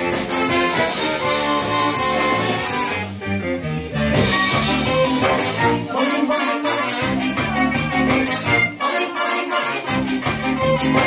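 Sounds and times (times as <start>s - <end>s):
bass guitar: 0.0s - 11.0s
drum kit: 0.0s - 11.0s
electric guitar: 0.0s - 11.0s.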